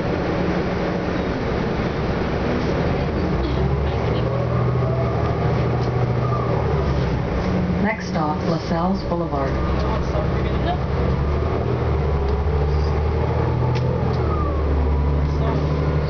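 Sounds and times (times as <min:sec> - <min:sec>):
bus engine accelerating: 0:00.0 - 0:16.0
rising whine: 0:08.0 - 0:16.0.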